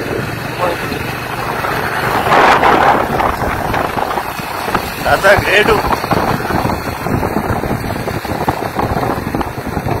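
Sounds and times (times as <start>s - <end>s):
motorcycle engine: 0.0s - 10.0s
wind buffeting microphone: 0.0s - 10.0s.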